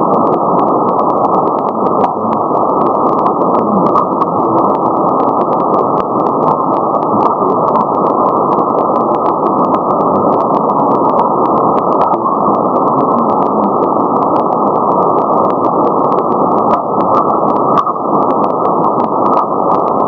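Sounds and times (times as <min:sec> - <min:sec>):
radio band noise hiss: 0:00.0 - 0:20.0
sharp static clicks: 0:00.0 - 0:20.0.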